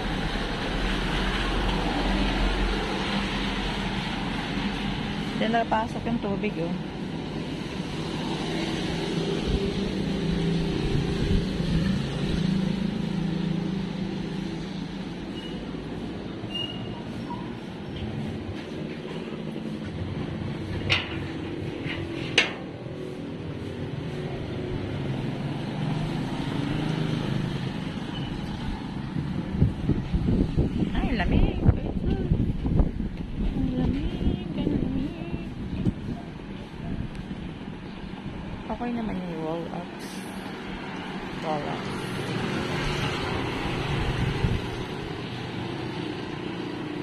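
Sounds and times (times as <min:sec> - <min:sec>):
vehicles on wet road: 0:00.0 - 0:47.0.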